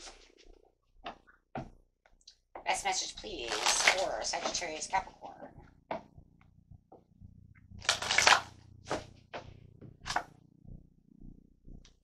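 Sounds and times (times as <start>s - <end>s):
cards shuffling: 7.8s - 9.1s.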